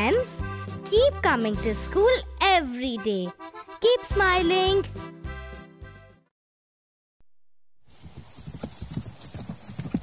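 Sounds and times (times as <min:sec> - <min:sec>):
horse hoofbeats clip-clopping: 0:07.9 - 0:10.0.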